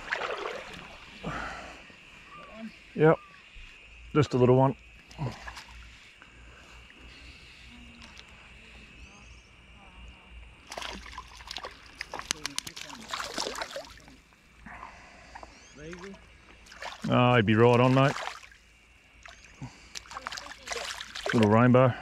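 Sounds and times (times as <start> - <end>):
fish splashing in water: 0.0 - 1.1, 10.6 - 14.3, 15.3 - 21.5.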